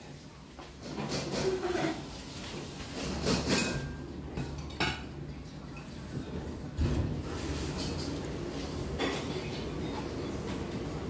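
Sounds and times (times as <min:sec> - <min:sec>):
dishes clinking and knocking: 0:00.8 - 0:02.0, 0:02.9 - 0:05.2, 0:08.9 - 0:10.7.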